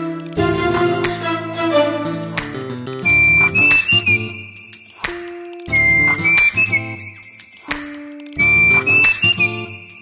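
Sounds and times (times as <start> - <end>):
lower musical accompaniment: 0.0 - 10.0
high whistled melody: 3.0 - 10.0.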